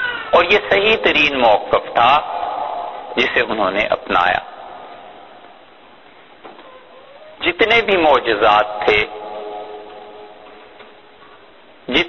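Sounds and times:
man's voice echoing: 0.3 - 5.9, 7.4 - 12.0.

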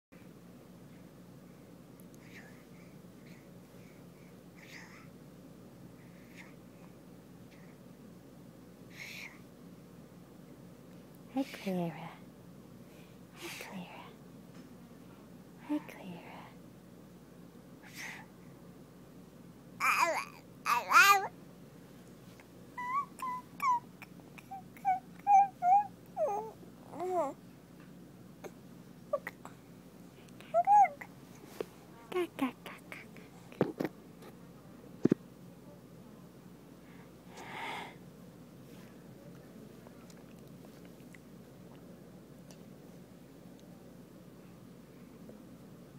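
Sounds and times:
baby babbling: 19.8 - 21.3, 22.8 - 27.4, 29.1 - 29.4, 30.4 - 31.1
baby squealing: 22.8 - 23.8.

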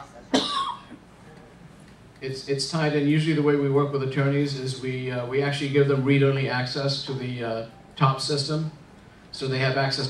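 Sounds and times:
person coughing: 0.3 - 1.0.

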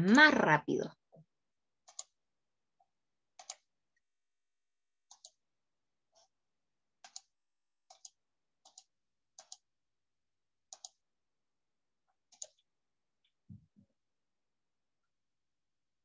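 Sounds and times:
computer mouse clicks: 1.8 - 2.2, 3.4 - 3.7, 5.0 - 5.4, 7.0 - 9.7, 10.7 - 11.0, 12.2 - 12.7.

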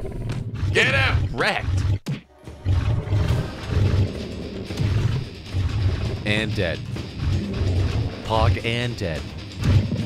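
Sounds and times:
game music with low beat: 0.0 - 10.0.

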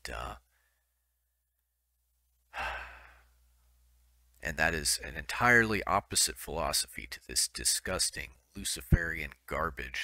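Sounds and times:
man sighing: 2.5 - 3.4.

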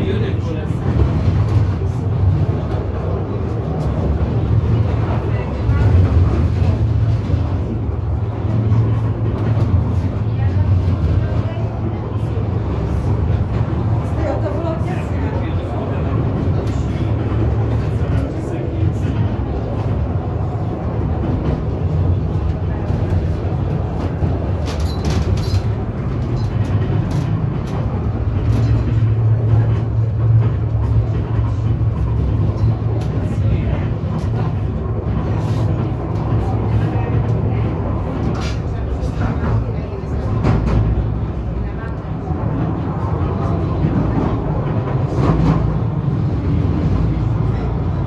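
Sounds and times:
railway car rumbling: 0.0 - 48.0.

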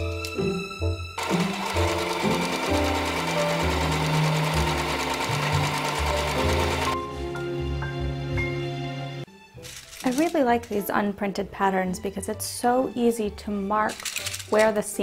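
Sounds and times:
background music: 0.0 - 15.0
electric sewing machine stitching: 1.2 - 7.0.

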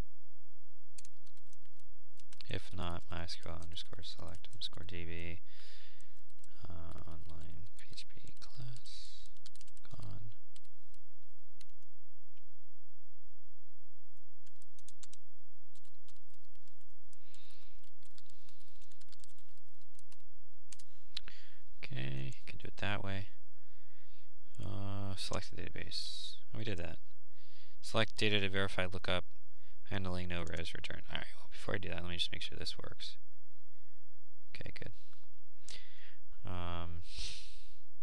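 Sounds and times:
keyboard typing clicks: 6.2 - 10.7, 17.4 - 20.9.

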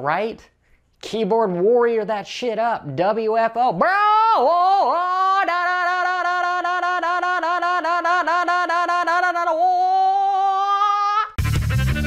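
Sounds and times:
man's high-pitched pulsing yell: 3.8 - 11.4
music with heavy beat: 11.4 - 12.0.

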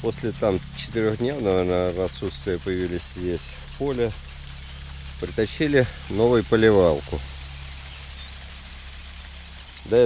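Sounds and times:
sprinkler ticking: 0.0 - 10.0
sprinkler water spray hiss: 0.0 - 10.0.

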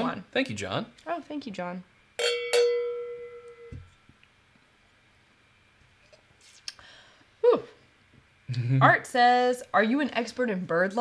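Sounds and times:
cowbell strikes: 2.2 - 3.8.

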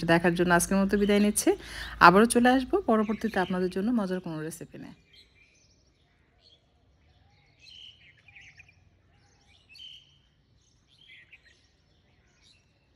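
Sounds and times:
faint birds chirping: 0.0 - 12.9.

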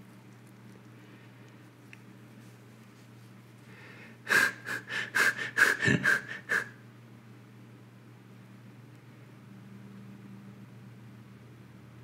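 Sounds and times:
person making short breathy sounds: 3.9 - 6.8.

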